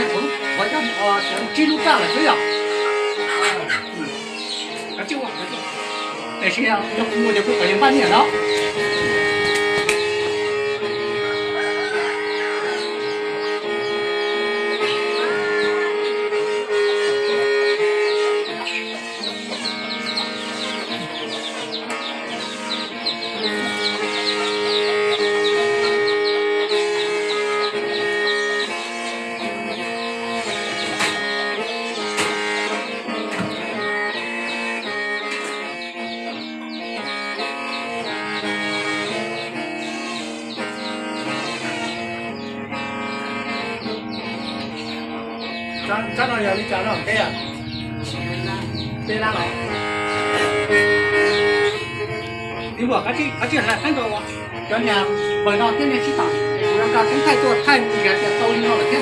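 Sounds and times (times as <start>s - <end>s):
mouth organ chords over drone: 0.0s - 59.0s.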